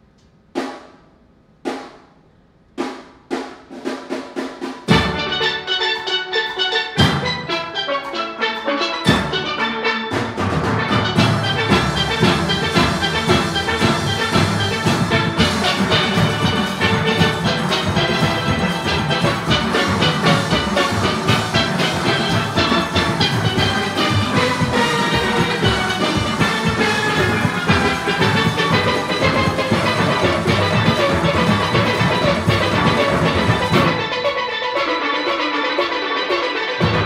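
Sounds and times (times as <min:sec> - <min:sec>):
percussion: 0:00.0 - 0:37.0
steel pan orchestra playing: 0:04.3 - 0:37.0.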